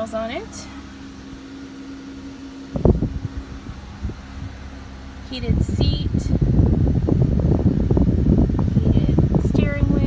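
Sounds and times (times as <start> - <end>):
low hum inside car cabin: 0.0 - 10.0.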